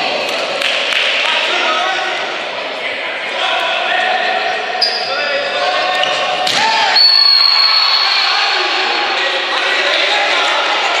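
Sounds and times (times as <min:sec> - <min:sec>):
referee's whistle blast: 0:06.9 - 0:08.6.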